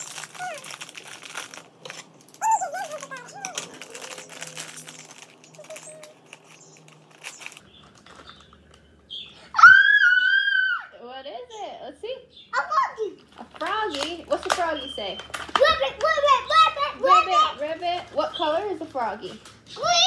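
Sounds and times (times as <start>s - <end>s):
plastic packet crinkling: 0.0s - 9.0s, 13.2s - 15.6s
child squealing: 0.2s - 0.8s, 2.4s - 3.7s, 5.6s - 6.2s, 9.5s - 11.0s.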